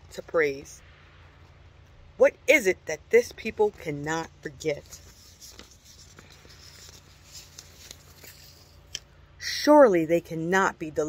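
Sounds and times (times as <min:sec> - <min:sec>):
low hum: 0:00.0 - 0:09.4.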